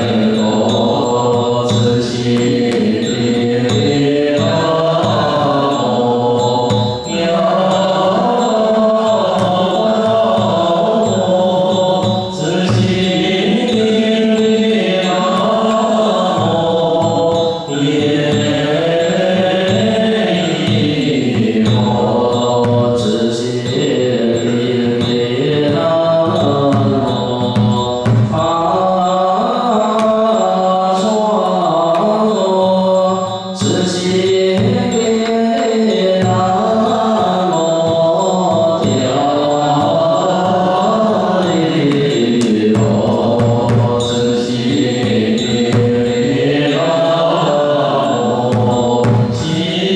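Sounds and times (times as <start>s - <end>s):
drum strikes: 0.0s - 49.9s
group chanting in unison: 0.0s - 49.9s.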